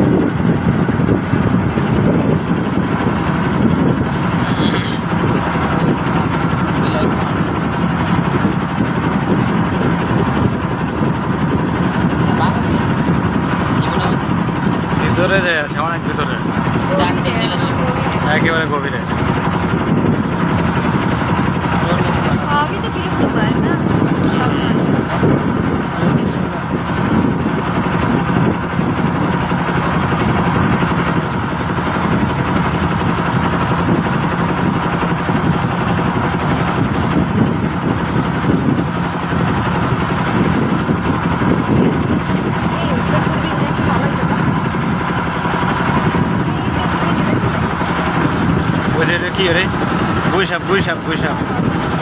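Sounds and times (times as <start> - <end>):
boat engine running: 0.0 - 52.0.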